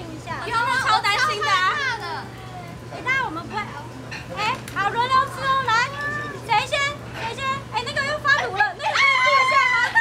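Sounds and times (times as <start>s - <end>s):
young women talking excitedly: 0.0s - 10.0s.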